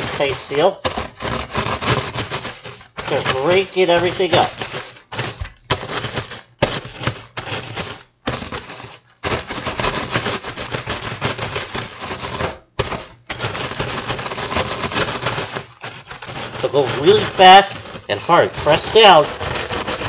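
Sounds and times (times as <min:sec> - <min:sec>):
plastic bag crinkling: 0:00.0 - 0:09.1, 0:10.4 - 0:20.0
rolling pin crushing cookies: 0:00.0 - 0:20.0.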